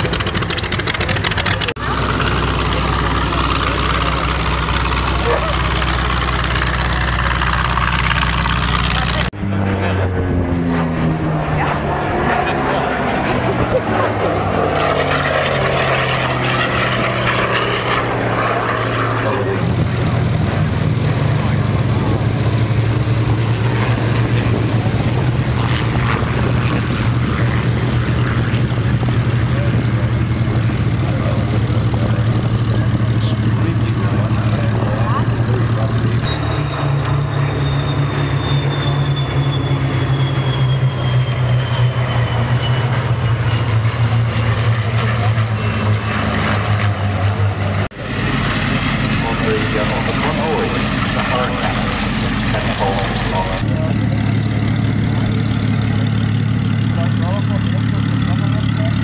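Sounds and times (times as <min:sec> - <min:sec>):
formation of planes droning overhead: 0:00.0 - 0:59.0
propeller engine running on ground: 0:00.0 - 0:59.0
propeller plane engine in flight: 0:00.0 - 0:59.0.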